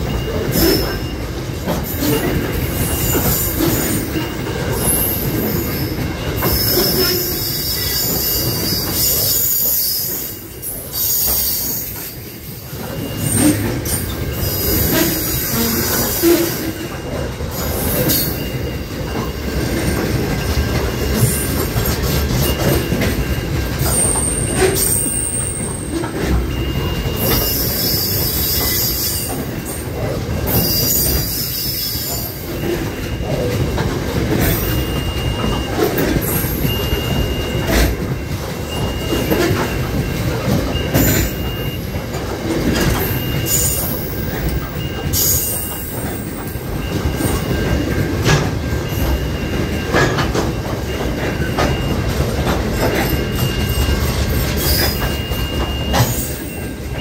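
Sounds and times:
freight train rumbling past: 0:00.0 - 0:57.0
wheels clicking over rail joints: 0:00.0 - 0:57.0
high thin wheel squeal: 0:01.8 - 0:16.9, 0:23.8 - 0:29.8, 0:30.5 - 0:33.5, 0:43.0 - 0:47.8.

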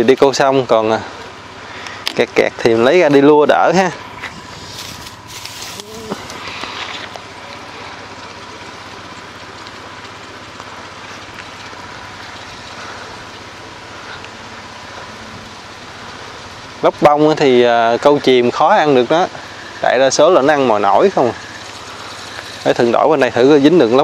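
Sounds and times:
steady outdoor noise: 0:00.0 - 0:24.0
fishing line hiss on cast: 0:04.6 - 0:07.1.

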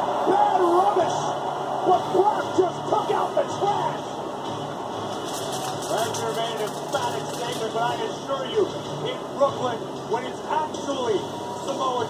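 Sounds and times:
television music: 0:00.0 - 0:12.0
television voices: 0:00.0 - 0:12.0.

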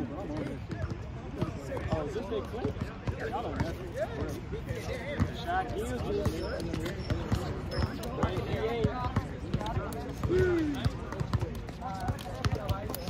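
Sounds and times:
basketball bouncing on hard court: 0:07.0 - 0:12.8
players calling out: 0:09.7 - 0:11.1.

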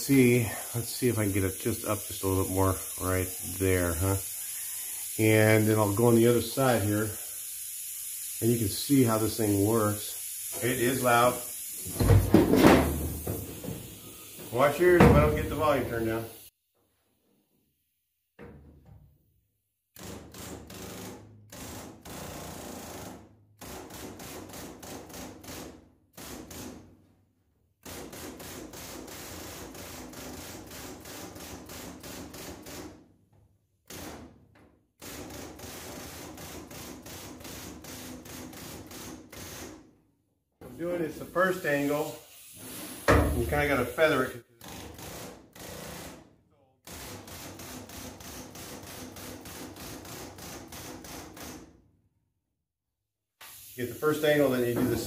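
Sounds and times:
air hammer on sheet metal: 0:20.0 - 0:26.9, 0:27.8 - 0:33.0, 0:33.9 - 0:34.4, 0:35.0 - 0:39.8, 0:41.4 - 0:51.7.

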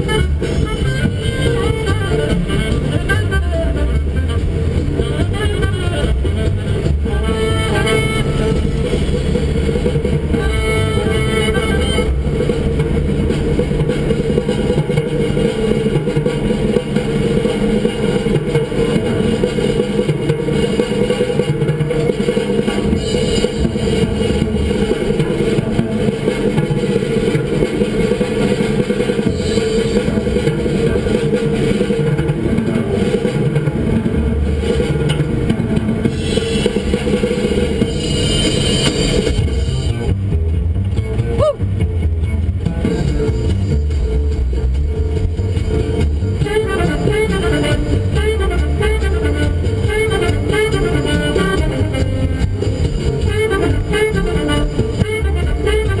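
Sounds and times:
guitar music on car radio: 0:00.0 - 0:14.4, 0:37.8 - 0:56.0.

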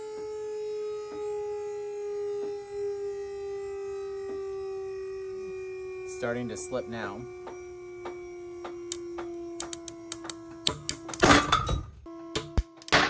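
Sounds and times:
test rig humming: 0:00.0 - 0:12.9.

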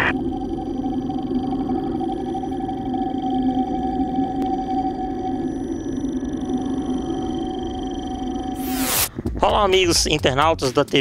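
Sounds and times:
electronic drone: 0:00.0 - 0:09.1.

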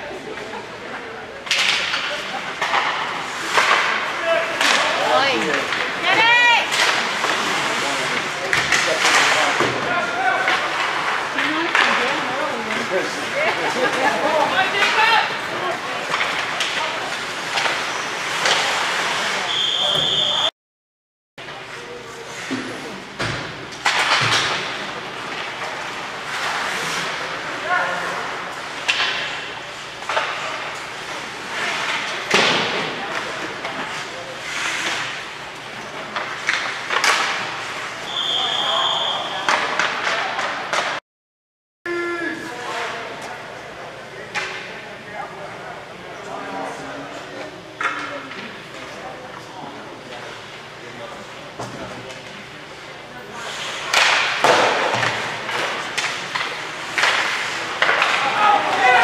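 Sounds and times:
referee's whistle blast: 0:19.5 - 0:20.5, 0:38.1 - 0:39.5
sticks and puck hitting boards: 0:22.5 - 0:27.2, 0:36.1 - 0:37.8, 0:53.8 - 0:59.0
spectators shouting: 0:58.2 - 0:59.0.

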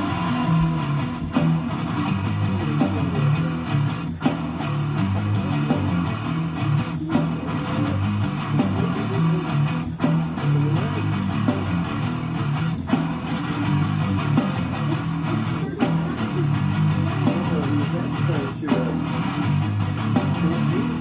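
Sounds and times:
guitar music with bass line: 0:00.0 - 0:21.0.

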